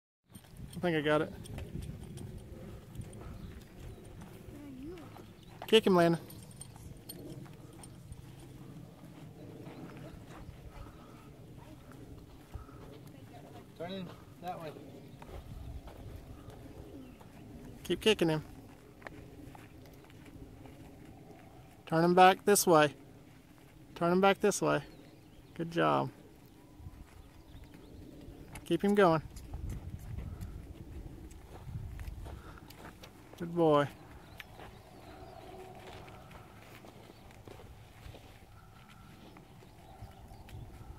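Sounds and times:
horse hooves on dirt: 0.3s - 40.9s.

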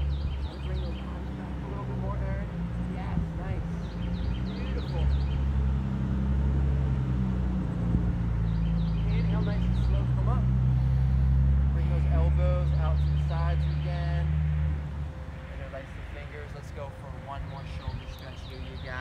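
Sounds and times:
motor engine humming: 0.0s - 19.0s.

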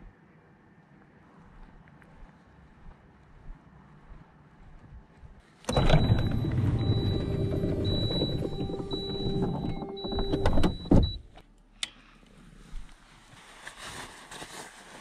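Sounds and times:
electric window motor whining: 5.7s - 11.0s.

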